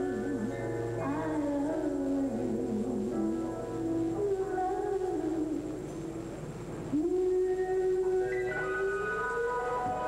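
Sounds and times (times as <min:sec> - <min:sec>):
quiet musical backing: 0:00.0 - 0:10.0.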